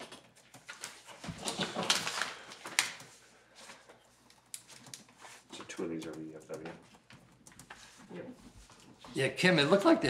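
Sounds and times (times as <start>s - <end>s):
paper crinkling: 0.4s - 9.9s
paper rustling: 0.4s - 10.0s.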